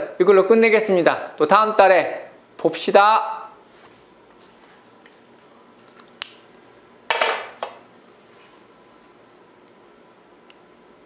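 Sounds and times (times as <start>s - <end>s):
remote clattering on hard surface: 7.1s - 7.8s.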